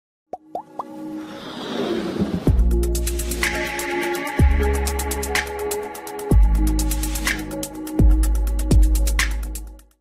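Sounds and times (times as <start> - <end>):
plops bending upward in pitch: 0.3 - 0.9.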